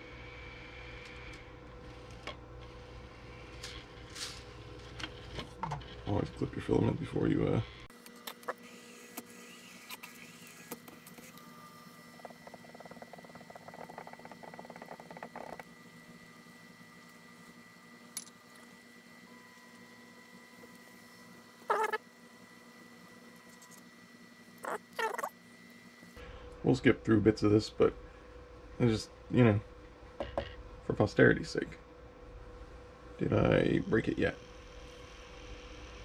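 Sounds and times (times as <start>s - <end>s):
printer motors and fans whining: 0.0s - 36.0s
short motor movements: 8.2s - 15.7s.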